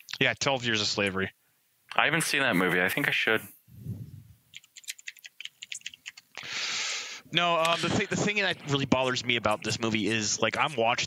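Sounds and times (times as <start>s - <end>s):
keyboard typing: 4.5s - 6.4s.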